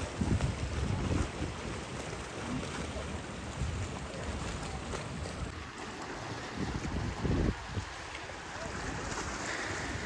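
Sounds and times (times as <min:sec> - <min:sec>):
sea wash: 0:00.0 - 0:10.0
wind buffeting microphone: 0:00.0 - 0:10.0.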